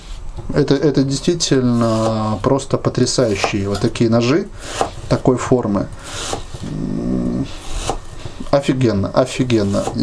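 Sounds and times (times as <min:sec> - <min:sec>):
man humming: 0:06.6 - 0:07.6.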